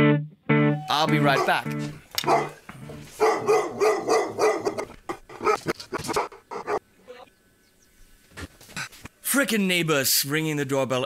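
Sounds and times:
person's voice: 0.9s - 1.8s
dog barking: 1.2s - 6.8s.

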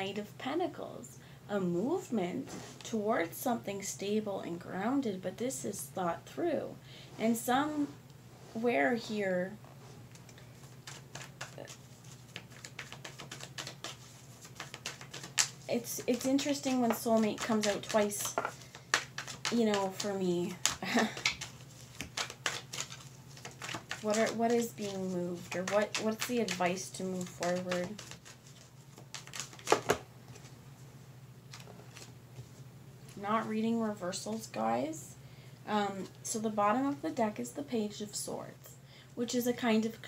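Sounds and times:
cards being shuffled: 10.1s - 30.5s, 31.5s - 33.2s.

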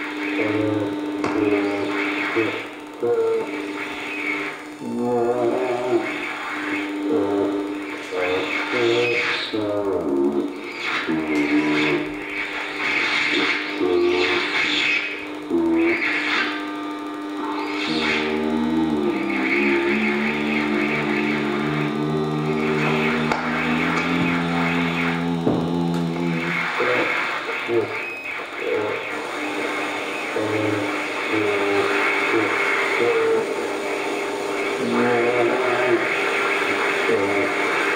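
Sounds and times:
low electronic drone: 0.0s - 37.9s
short shifting pitched notes: 15.2s - 26.7s.

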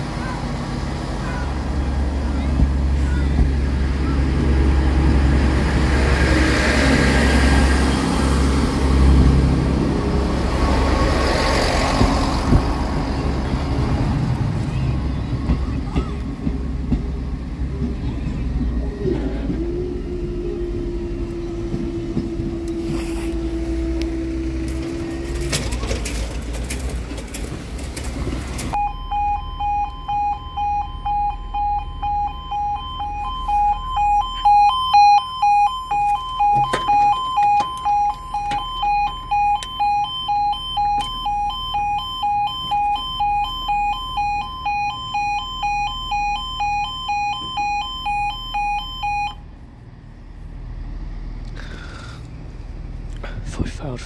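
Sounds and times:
level crossing two-tone alarm: 28.8s - 49.4s.

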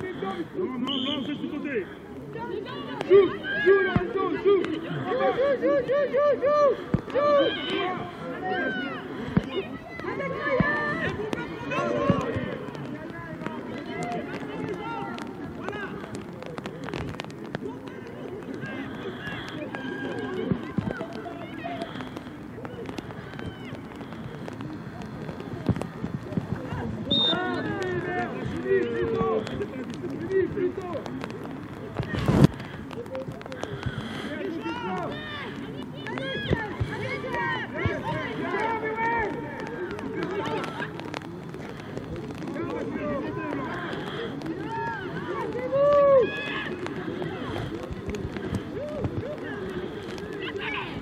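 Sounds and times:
voices calling and shouting: 0.0s - 51.0s.

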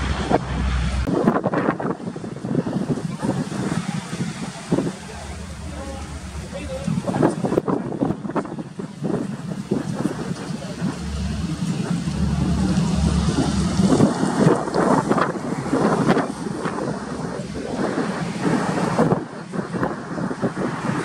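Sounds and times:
turboprop engines droning: 0.0s - 21.0s
wind buffeting microphone: 0.0s - 21.0s.

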